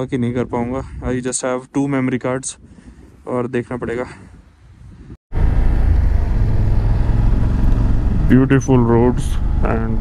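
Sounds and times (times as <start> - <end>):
wind: 0.0 - 10.0
road rumble: 5.3 - 10.0
motorcycle engine running: 5.4 - 10.0.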